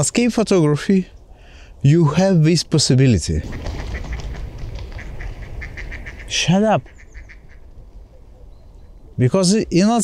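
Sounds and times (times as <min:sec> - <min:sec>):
waterbirds calling: 0:03.2 - 0:10.0.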